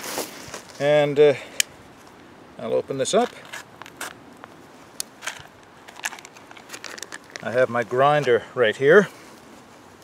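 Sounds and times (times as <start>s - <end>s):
plastic bag crinkling: 5.2s - 7.6s.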